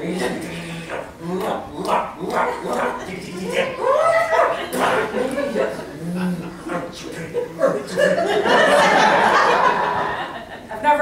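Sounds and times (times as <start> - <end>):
person wavering whine: 0.0 - 8.2.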